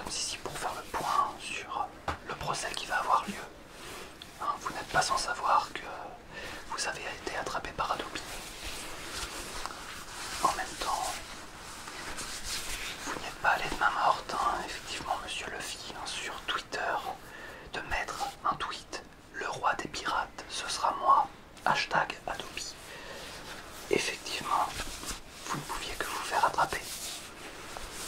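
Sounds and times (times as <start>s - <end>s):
person whispering: 0.0s - 3.6s, 4.2s - 11.5s, 12.3s - 27.3s.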